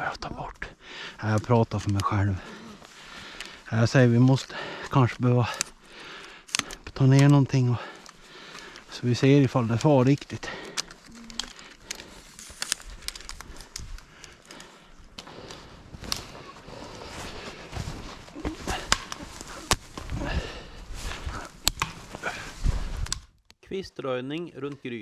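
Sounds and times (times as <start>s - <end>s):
branches rustling: 0.8s - 23.4s
twigs snapping: 1.3s - 23.6s
footsteps crunching in snow: 15.5s - 23.0s.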